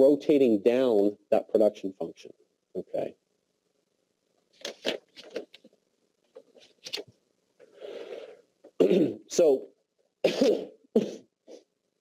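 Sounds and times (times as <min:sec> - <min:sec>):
man coughing: 0:08.8 - 0:09.3, 0:10.2 - 0:11.3.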